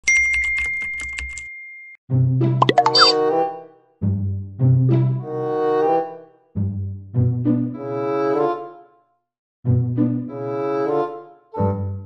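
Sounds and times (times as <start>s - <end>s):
typewriter bell ding: 0.0s - 2.0s.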